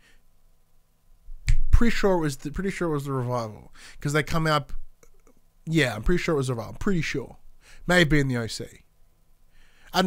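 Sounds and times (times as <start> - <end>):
finger snap: 1.4 - 1.8.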